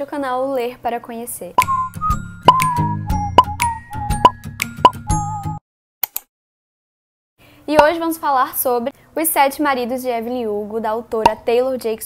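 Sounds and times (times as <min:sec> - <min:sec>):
cartoon pop sound effects: 0:01.6 - 0:05.1
playful jingle with bouncy bass: 0:01.7 - 0:05.6.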